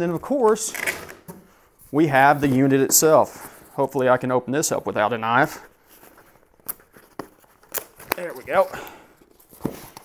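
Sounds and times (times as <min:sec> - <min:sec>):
crackles of tape and cardboard: 0:05.9 - 0:10.0.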